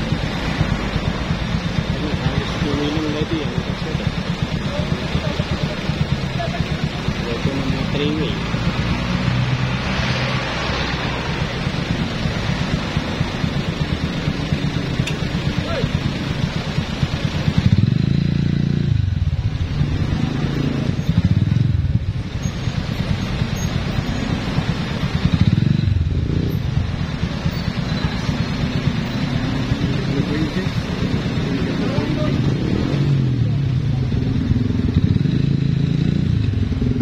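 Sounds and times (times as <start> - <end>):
motorcycle engine rumbling: 0.0 - 37.0.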